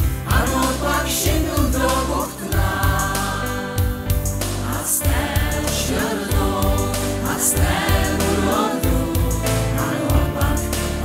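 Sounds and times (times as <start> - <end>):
backing track with bass: 0.0 - 11.0
group of voices singing: 0.0 - 11.0.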